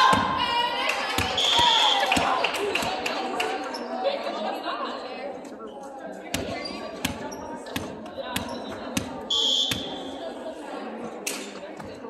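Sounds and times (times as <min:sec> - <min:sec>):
volleyballs being struck: 0:01.1 - 0:03.0, 0:06.3 - 0:10.0.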